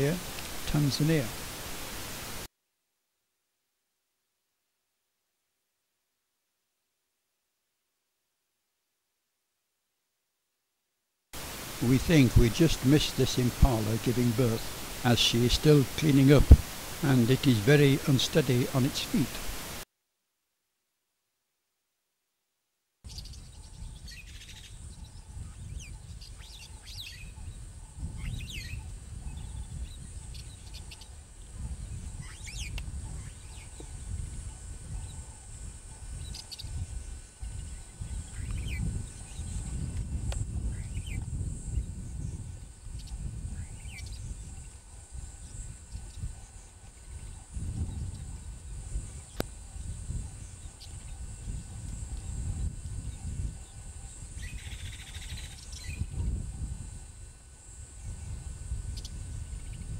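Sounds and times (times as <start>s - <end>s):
high-pitched hiss: 0.0s - 2.5s, 11.4s - 19.8s.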